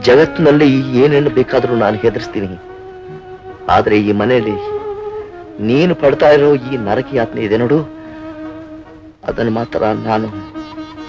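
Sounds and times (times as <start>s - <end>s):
man's voice: 0.0s - 2.6s, 3.7s - 4.8s, 5.6s - 8.0s, 9.2s - 10.5s
steady buzzing tone: 0.0s - 11.0s.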